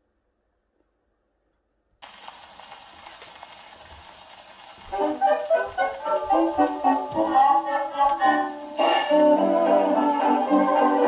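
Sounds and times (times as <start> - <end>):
record surface hiss and crackle: 0.0 - 11.0
dance orchestra playing: 4.9 - 11.0.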